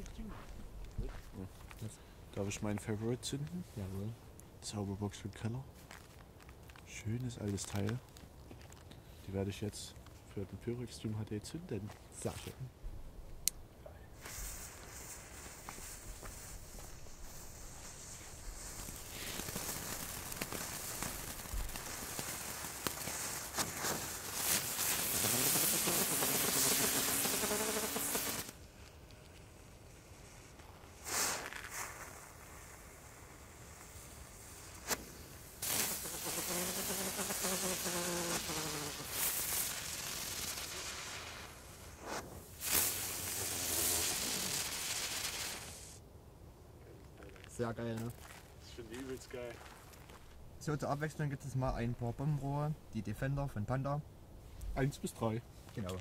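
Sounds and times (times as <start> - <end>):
firework fountain hissing: 14.2 - 46.0
sharp cracks: 14.2 - 46.0.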